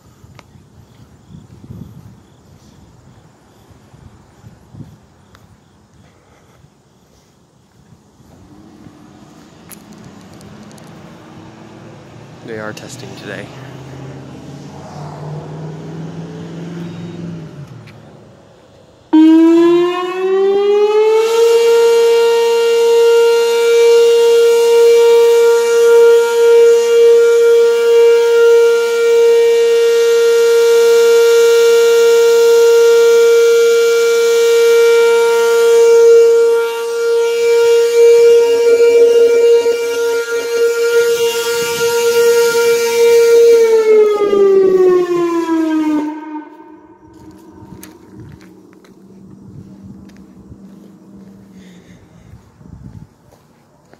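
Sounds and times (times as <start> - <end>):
warning siren steady tone: 7.9 - 53.4.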